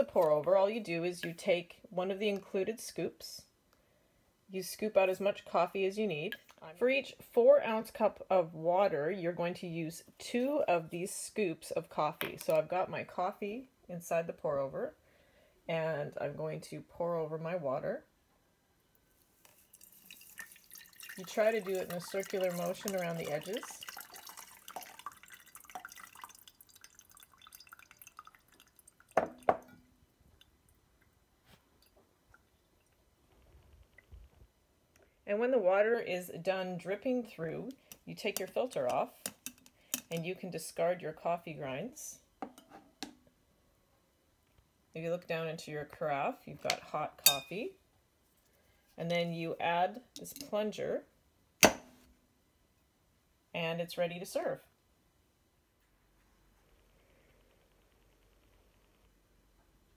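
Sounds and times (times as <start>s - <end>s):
coffee dripping through filter: 19.1s - 34.4s.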